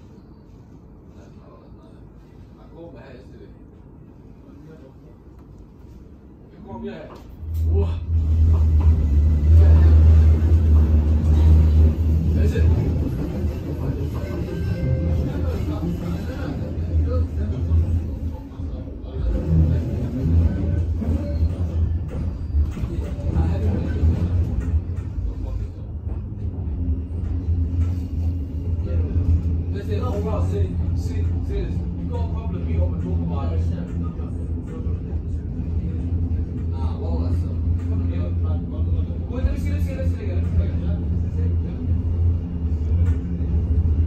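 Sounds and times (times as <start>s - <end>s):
tram running rumble: 5.6s - 44.0s.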